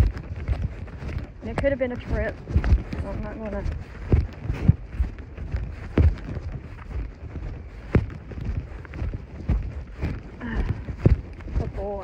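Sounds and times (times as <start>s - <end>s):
horse hooves thudding on sand: 0.0s - 12.0s
wind rumbling on microphone: 0.0s - 12.0s.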